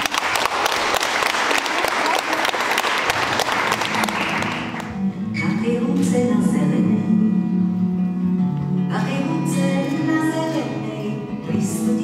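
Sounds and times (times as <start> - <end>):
audience applauding: 0.0 - 5.0
acoustic guitar playing: 3.1 - 12.0.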